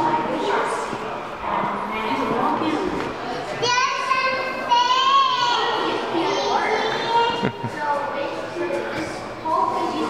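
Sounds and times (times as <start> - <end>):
voices in a large hall: 0.0 - 10.0.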